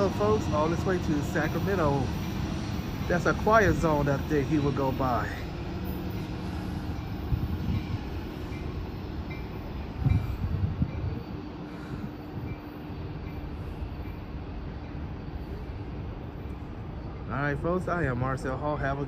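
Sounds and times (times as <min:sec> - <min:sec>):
train rumbling: 0:00.0 - 0:19.0.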